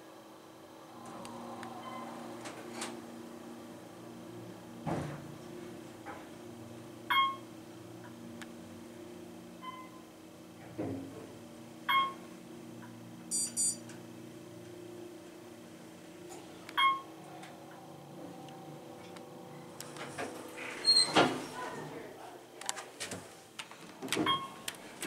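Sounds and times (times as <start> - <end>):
elevator low hum: 0.0 - 25.0
elevator chime pings: 7.1 - 7.4, 11.9 - 12.2, 13.3 - 13.8, 16.8 - 17.2
high double beep: 13.3 - 13.8.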